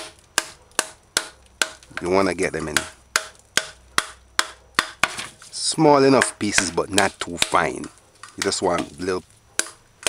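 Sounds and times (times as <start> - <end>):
hammer cracking coconut shell: 0.0 - 5.2, 6.0 - 9.8.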